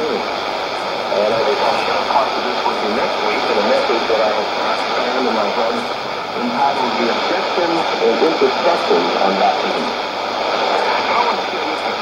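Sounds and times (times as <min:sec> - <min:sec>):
radio speech through loudspeaker: 0:00.0 - 0:12.0
shortwave radio hiss: 0:00.0 - 0:12.0.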